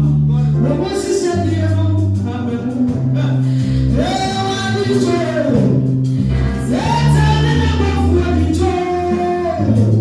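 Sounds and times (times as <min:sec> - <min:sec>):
sustained bass notes: 0:00.0 - 0:10.0.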